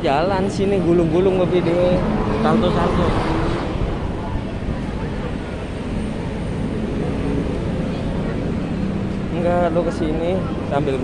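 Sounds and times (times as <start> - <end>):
faint voices: 0.0 - 11.0
road traffic rumble: 0.0 - 11.0.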